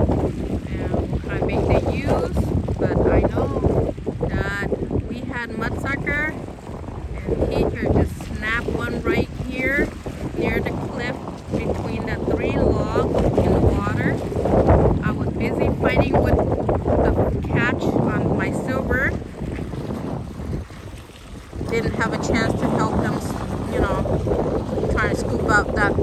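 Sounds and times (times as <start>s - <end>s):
wind buffeting microphone: 0.0s - 26.0s
people talking: 0.6s - 6.4s, 7.2s - 14.2s, 15.0s - 16.4s, 17.0s - 19.2s, 21.7s - 24.1s, 24.9s - 26.0s.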